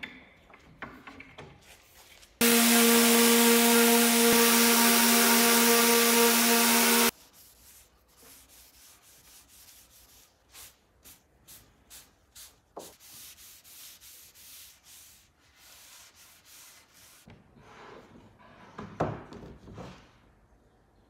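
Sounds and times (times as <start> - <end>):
orbital sander running: 2.4 - 7.1.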